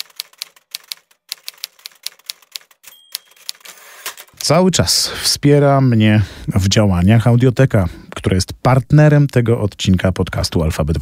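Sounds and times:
typewriter keys clacking: 0.0s - 4.6s
typewriter bell ding: 2.8s - 4.2s.

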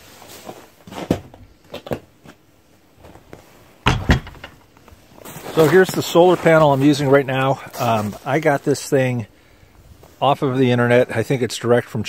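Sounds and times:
light knocks and handling: 3.0s - 5.0s
wooden door shutting: 3.8s - 4.6s
door latch being worked: 3.9s - 4.6s.

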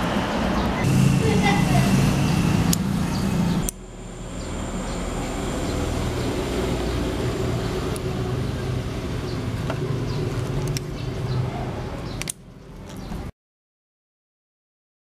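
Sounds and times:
indistinct voices: 0.6s - 12.2s
faint high whine: 0.7s - 8.9s
low rumble: 0.8s - 11.4s.

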